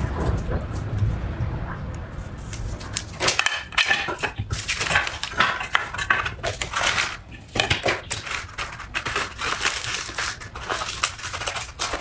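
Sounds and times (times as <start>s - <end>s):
seaweed sheet crinkling: 4.1s - 12.0s.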